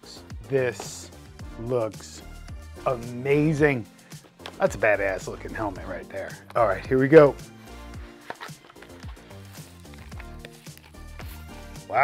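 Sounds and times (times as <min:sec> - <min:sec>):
background music with bass notes: 0:00.0 - 0:12.0.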